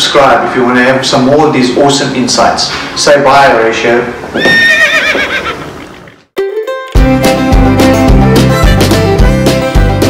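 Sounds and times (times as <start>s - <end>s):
horse whinnying: 4.3s - 6.1s
music: 6.4s - 10.0s.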